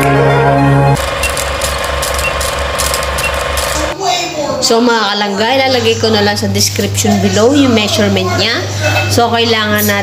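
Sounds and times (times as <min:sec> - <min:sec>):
intro music: 0:00.0 - 0:03.5
steady mechanical rattling: 0:01.0 - 0:04.0.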